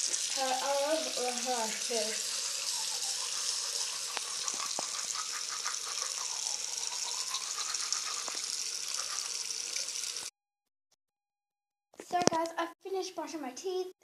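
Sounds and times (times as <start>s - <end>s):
tap water running: 0.0s - 10.3s.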